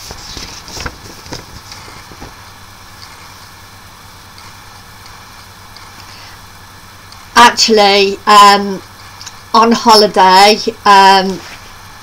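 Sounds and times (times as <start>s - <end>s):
paper rustling and clicks: 0.0s - 2.4s
low electrical hum: 0.0s - 12.0s.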